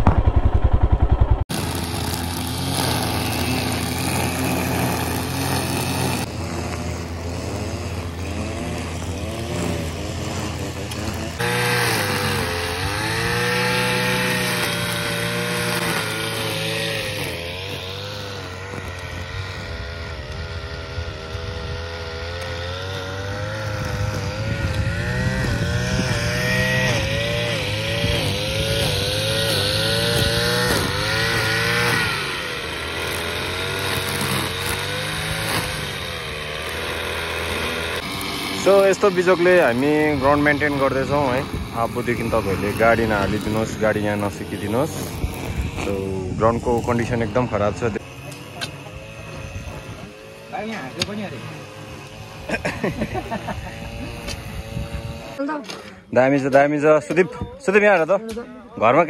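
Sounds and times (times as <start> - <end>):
brush cutter engine revving: 0.0 - 59.0.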